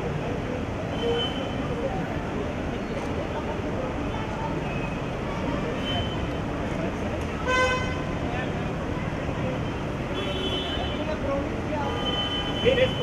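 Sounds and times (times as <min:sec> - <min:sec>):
engine and traffic rumble: 0:00.0 - 0:13.0.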